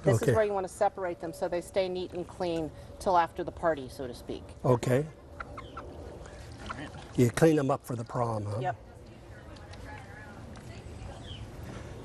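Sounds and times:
hen clucking softly: 5.4s - 6.0s.

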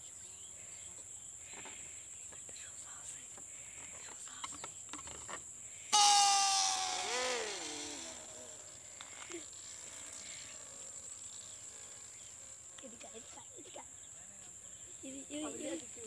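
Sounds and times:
balloon air whine: 6.0s - 10.5s.

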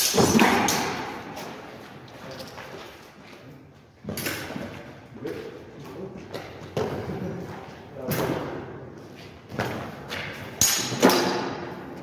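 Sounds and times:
sword blades clashing: 10.6s - 11.6s.

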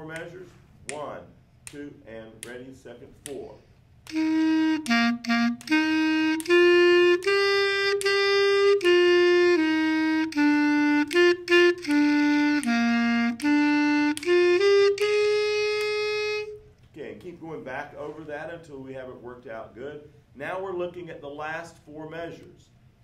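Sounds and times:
clarinet playing melody: 4.1s - 16.7s.

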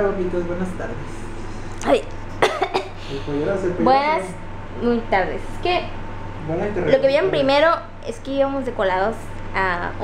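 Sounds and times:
woman coughing: 2.4s - 3.1s
woman saying ay: 3.8s - 5.4s.

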